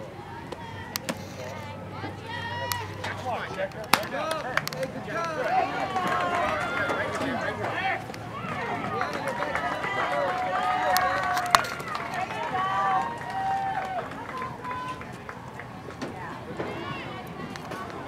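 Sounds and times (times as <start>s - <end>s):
girls calling and cheering: 0.1s - 3.1s, 5.0s - 18.0s.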